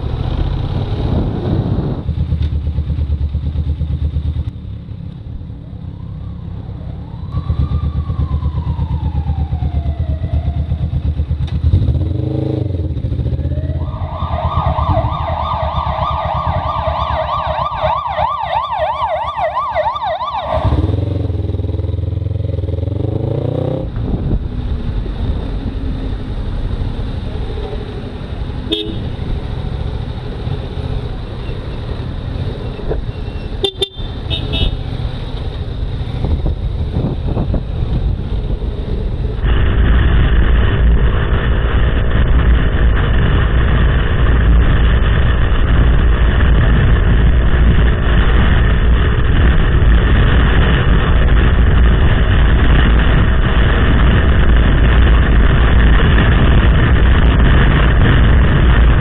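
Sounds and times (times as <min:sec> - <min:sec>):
motorcycle engine running: 0:00.0 - 0:05.2
road noise: 0:00.0 - 0:59.0
falling electronic tone: 0:13.3 - 0:21.1
warbling electronic tone: 0:13.4 - 0:20.7.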